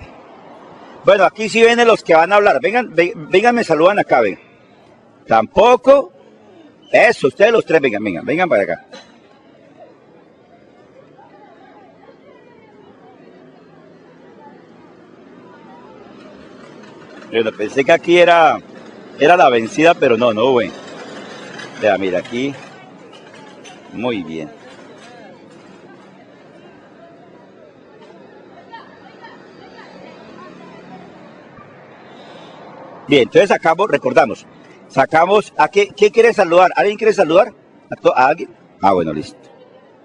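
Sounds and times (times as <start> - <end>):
outdoor street noise: 0.0 - 40.0
people chattering: 0.0 - 40.0
steady background noise: 0.0 - 40.0
people talking: 1.1 - 4.4, 21.7 - 31.7.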